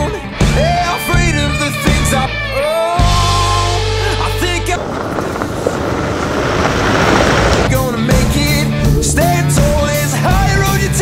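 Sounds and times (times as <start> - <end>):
rock song with singing: 0.0 - 4.9, 7.7 - 11.0
tyres crunching over gravel: 4.1 - 8.0.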